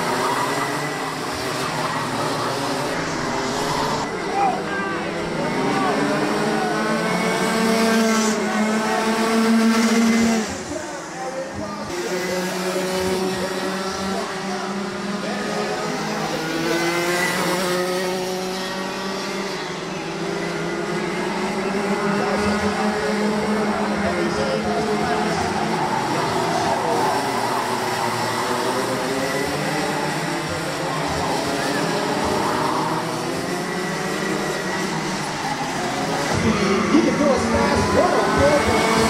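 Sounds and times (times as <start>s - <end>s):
kart engines revving: 0.0s - 39.0s.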